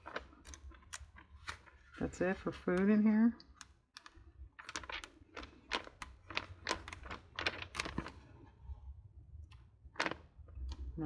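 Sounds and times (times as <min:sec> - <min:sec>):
magazine pages turning: 0:00.0 - 0:03.0, 0:04.0 - 0:08.6, 0:09.5 - 0:10.9.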